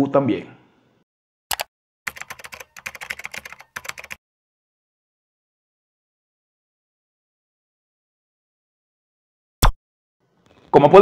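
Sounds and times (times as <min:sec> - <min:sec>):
keyboard key clicks: 0:01.5 - 0:04.2.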